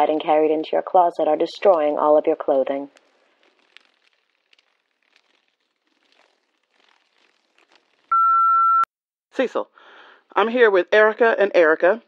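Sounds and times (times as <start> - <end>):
answering machine beep: 8.1 - 8.9.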